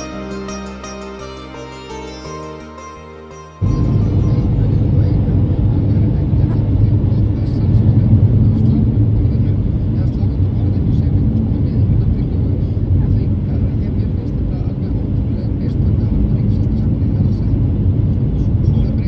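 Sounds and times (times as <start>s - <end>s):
car tyres and engine rumble: 4.2s - 19.0s.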